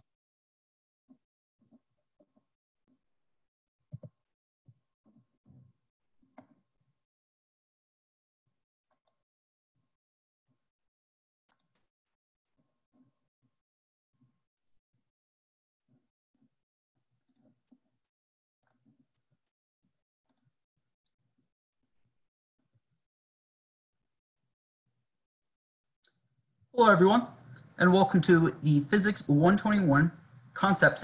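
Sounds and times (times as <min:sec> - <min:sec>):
computer mouse clicks: 0:03.9 - 0:04.2, 0:08.9 - 0:09.2, 0:11.5 - 0:11.9, 0:20.3 - 0:20.5.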